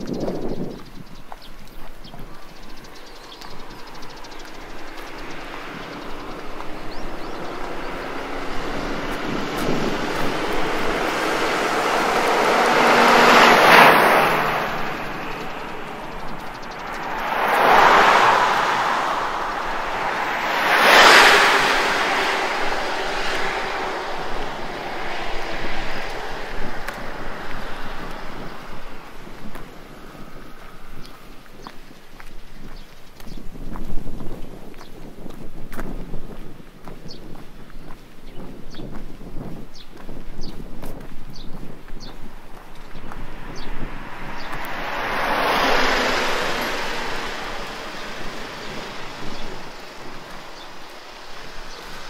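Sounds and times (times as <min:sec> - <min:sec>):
vehicles passing by: 0:00.0 - 0:52.0.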